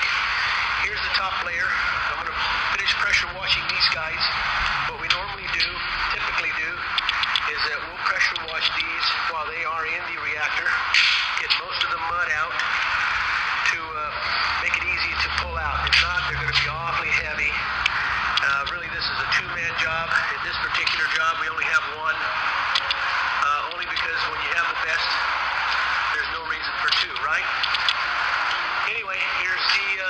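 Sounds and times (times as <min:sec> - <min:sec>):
man talking through a speaker: 0:00.0 - 0:27.9, 0:28.7 - 0:30.0
low hum: 0:00.0 - 0:29.8.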